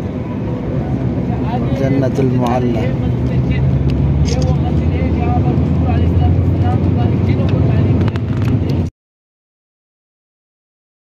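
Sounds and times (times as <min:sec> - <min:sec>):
vehicle engine and road noise: 0:00.0 - 0:08.9.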